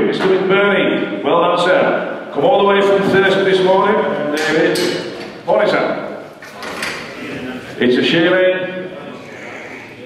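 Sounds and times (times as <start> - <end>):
voices murmuring: 6.5 - 10.0.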